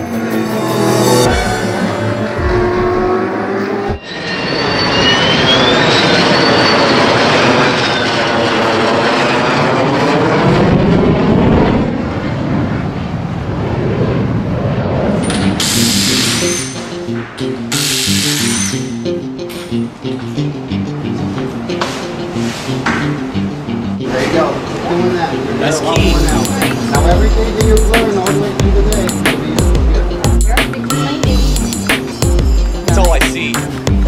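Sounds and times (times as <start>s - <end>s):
background music: 0.0s - 3.8s, 16.1s - 34.0s
car passing at speed: 0.2s - 6.4s, 8.9s - 17.4s
power tool hissing bursts: 15.6s - 16.8s, 17.7s - 18.9s.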